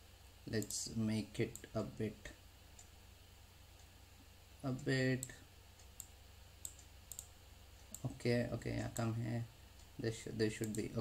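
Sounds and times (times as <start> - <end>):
low steady hum: 0.0 - 11.0
computer mouse clicking: 0.6 - 0.8, 4.8 - 8.2, 10.6 - 11.0.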